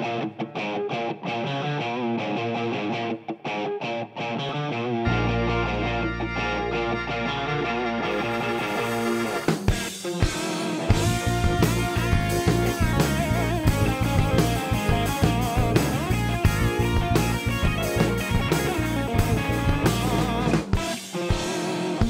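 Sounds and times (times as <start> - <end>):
electric guitar with bent notes: 0.0 - 22.0
drum kit: 8.0 - 22.0.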